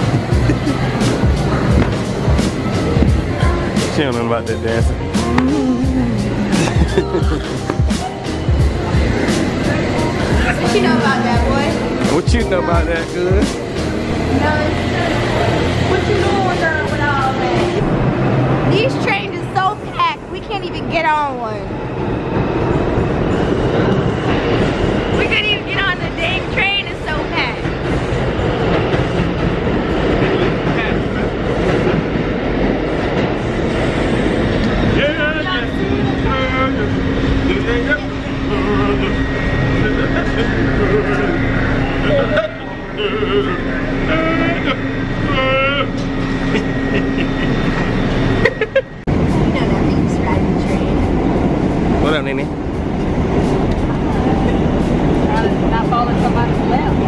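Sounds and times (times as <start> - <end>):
crowd voices: 0.0 - 57.0
steady low hum: 0.0 - 57.0
subway train rumbling clatter: 0.0 - 57.0.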